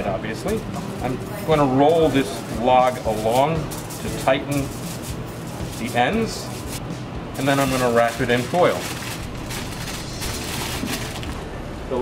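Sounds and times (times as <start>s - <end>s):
aluminium foil crinkling: 2.0s - 6.8s, 7.6s - 11.4s.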